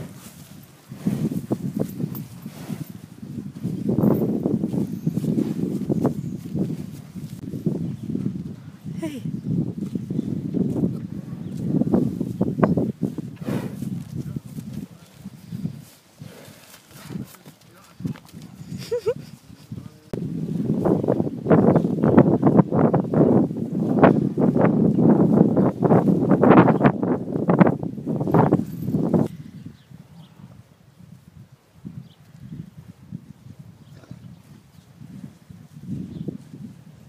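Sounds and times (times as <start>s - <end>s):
cows tearing grass: 0.0s - 7.5s, 9.8s - 18.9s.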